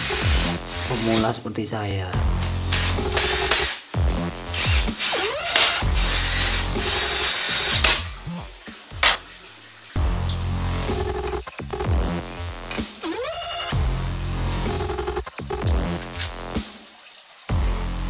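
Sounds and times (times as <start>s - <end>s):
cordless drill whirring: 0.0s - 1.3s, 2.4s - 3.8s, 4.5s - 8.0s
electronic dance music: 0.0s - 1.4s, 2.2s - 8.2s, 10.0s - 16.8s.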